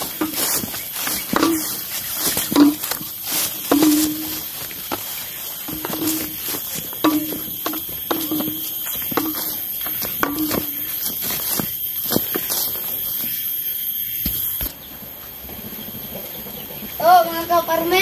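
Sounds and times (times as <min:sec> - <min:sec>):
footsteps on grass: 0:00.0 - 0:14.8
steady hiss: 0:00.0 - 0:15.7.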